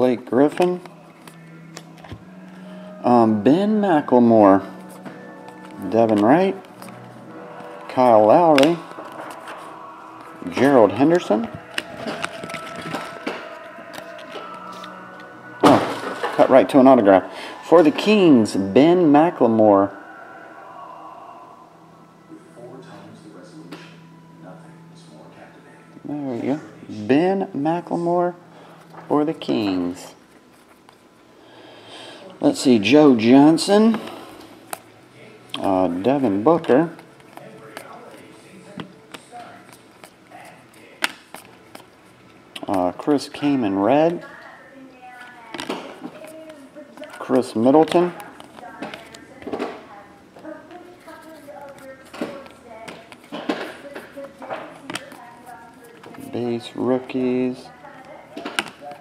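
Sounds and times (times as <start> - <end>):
faint steady hum: 0.0 - 59.0
cards tapping and sliding: 37.0 - 42.8, 51.0 - 56.4, 58.0 - 59.0
cards shuffled by hand: 39.1 - 42.8.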